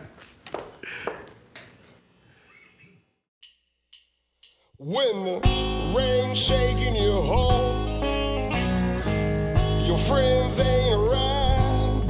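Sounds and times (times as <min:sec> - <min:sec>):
drumstick clicks: 0:03.4 - 0:04.8
electric guitar: 0:05.4 - 0:12.0.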